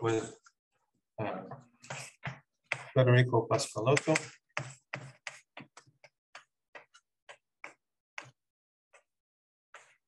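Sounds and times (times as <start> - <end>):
chalk tapping and scraping on blackboard: 1.6 - 10.0.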